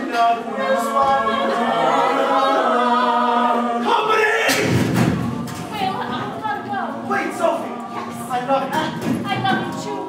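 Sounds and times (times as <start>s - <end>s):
young voices singing together: 0.0s - 10.0s.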